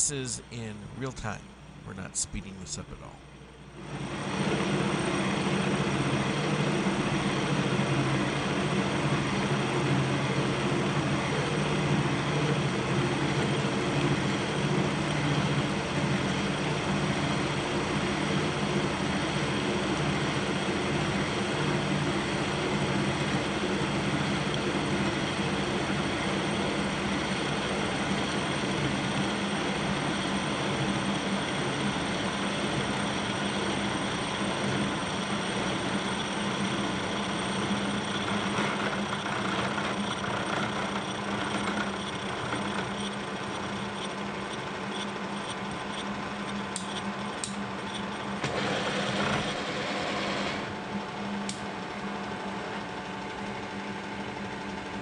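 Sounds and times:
milling machine drive drone: 0.0s - 55.0s.

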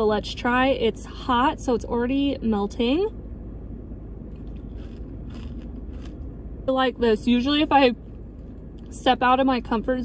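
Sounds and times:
car interior hum: 0.0s - 10.0s.

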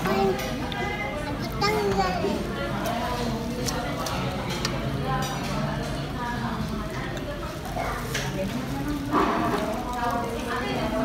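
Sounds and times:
child's voice: 0.0s - 2.4s
busy dining room noise: 0.0s - 11.0s.

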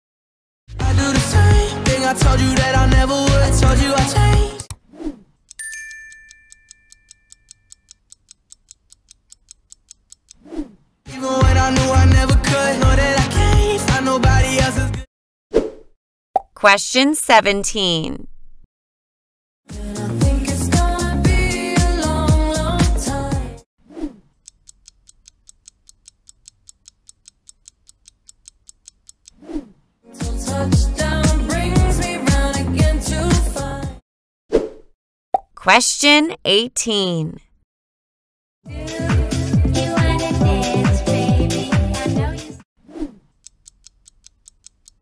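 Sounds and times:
clock-like ticking: 5.5s - 10.4s, 24.4s - 29.4s, 43.4s - 45.0s
two-note chime: 5.6s - 7.5s.

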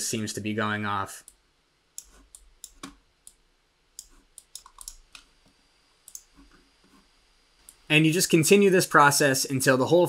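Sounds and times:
mouse and keyboard clicks: 2.0s - 3.4s, 4.0s - 5.3s.

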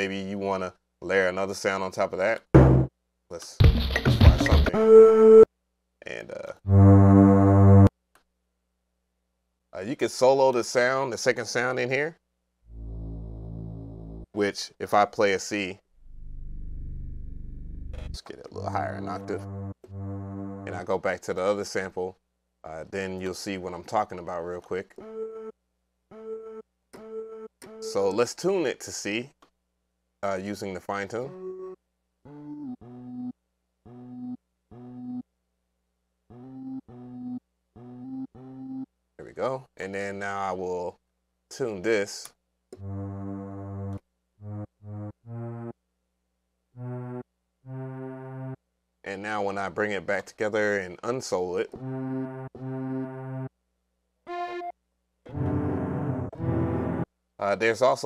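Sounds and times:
sampled synth notes: 6.7s - 7.9s, 12.7s - 14.3s, 18.8s - 20.8s.

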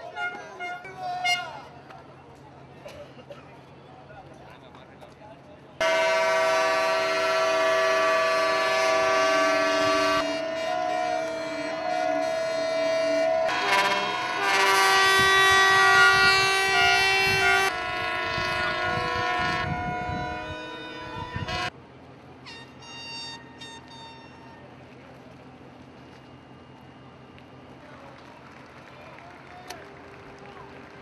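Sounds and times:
ships' horns sounding: 5.8s - 21.7s, 22.4s - 24.6s.

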